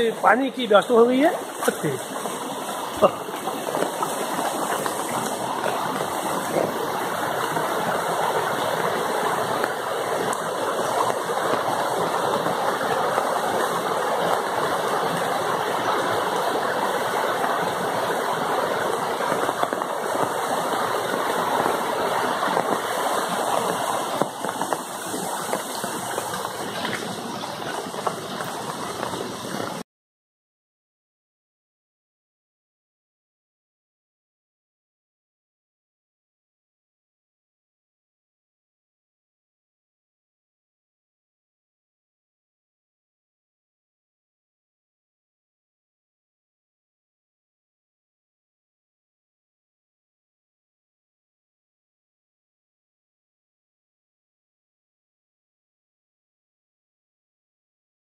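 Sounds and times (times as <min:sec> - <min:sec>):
stream rushing over rocks: 0:00.0 - 0:29.8.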